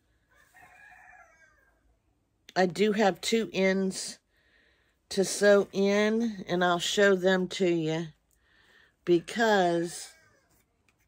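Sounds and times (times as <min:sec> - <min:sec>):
distant rooster crowing: 0:00.2 - 0:02.0.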